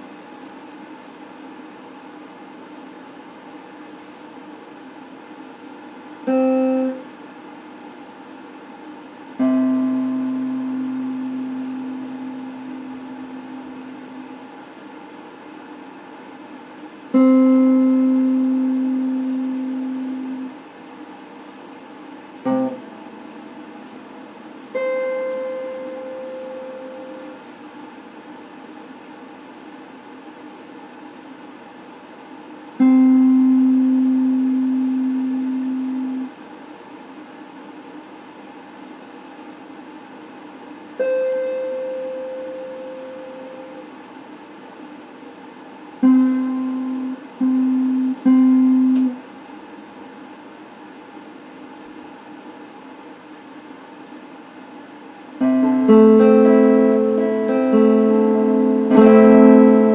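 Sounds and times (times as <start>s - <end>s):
electric guitar notes ringing: 6.3s - 7.0s, 9.4s - 14.4s, 17.1s - 20.6s, 22.4s - 27.4s, 32.8s - 36.3s, 41.0s - 43.8s, 46.0s - 49.2s, 55.4s - 59.9s.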